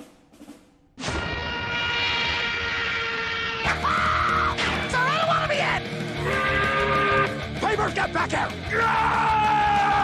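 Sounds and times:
rushing noise: 1.0s - 3.8s.

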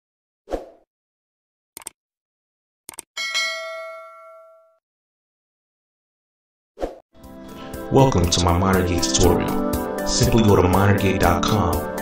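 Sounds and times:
notification bell ding: 3.2s - 4.8s.

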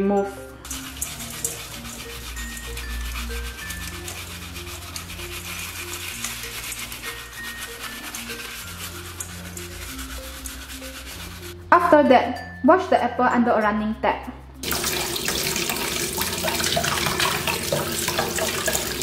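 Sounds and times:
background music with held notes: 0.0s - 19.0s
stiff brush scrubbing apple skin: 0.6s - 11.7s, 14.6s - 19.0s.

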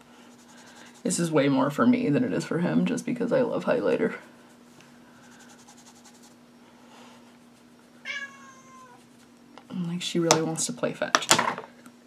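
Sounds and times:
faint steady hum: 0.0s - 12.0s
cat meowing: 8.0s - 9.0s.

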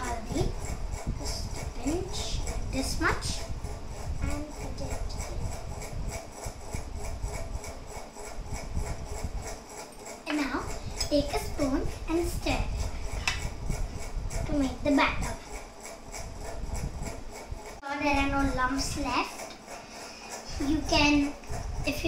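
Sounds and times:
stirring batter in plastic bowl: 0.0s - 22.0s.

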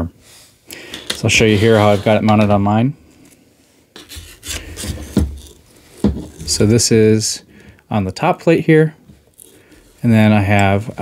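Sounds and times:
short scrapes: 0.3s - 2.4s, 4.0s - 6.7s.

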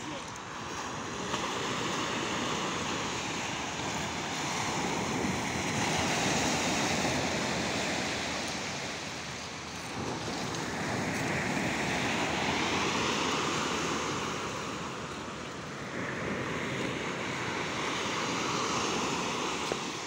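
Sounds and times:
sea surf washing onto beach: 0.0s - 20.0s.

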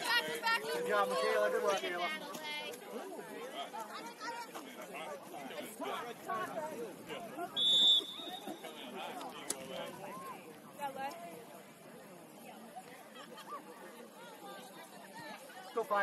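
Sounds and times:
voices calling and chatting: 0.0s - 16.0s
referee whistle blast: 7.6s - 8.6s.

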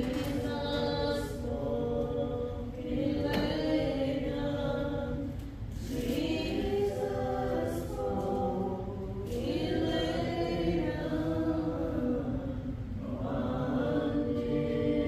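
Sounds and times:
people singing a hymn: 0.0s - 15.0s.

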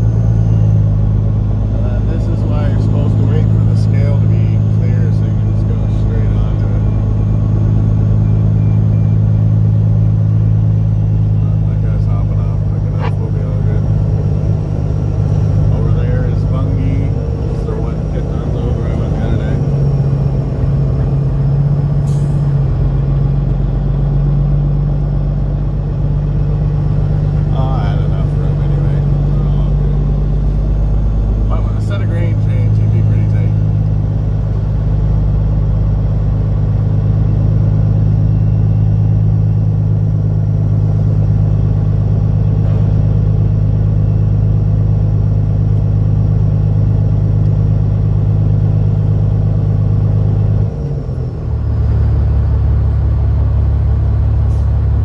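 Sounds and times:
diesel truck engine running: 0.0s - 55.0s.

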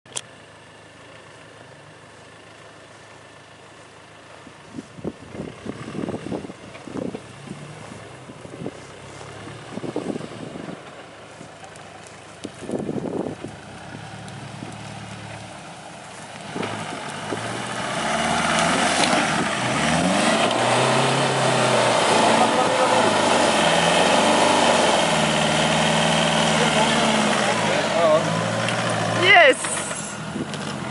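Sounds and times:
diesel engine revving: 4.6s - 30.9s.

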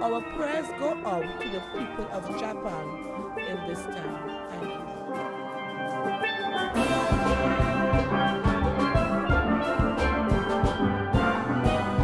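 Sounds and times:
steel pans playing: 0.0s - 12.0s
steady drum beat: 6.8s - 12.0s.

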